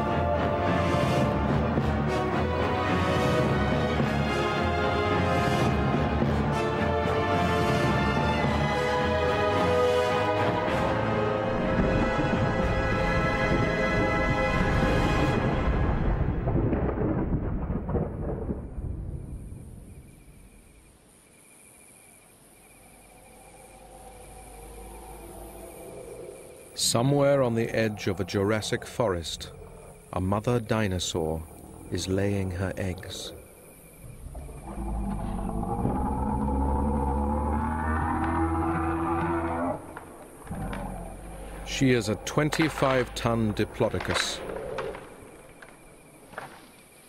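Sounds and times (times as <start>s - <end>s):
insects chirping: 0.0s - 47.0s
deep rumble: 11.4s - 20.0s, 33.3s - 46.1s
long low creature bellow: 34.4s - 43.1s.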